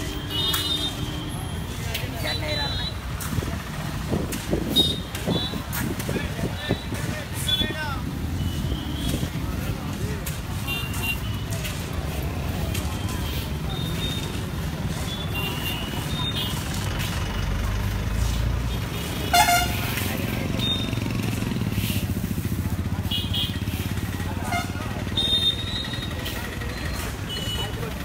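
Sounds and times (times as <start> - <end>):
traffic engines running: 0.0 - 28.0
vehicle horn honking: 19.2 - 19.8.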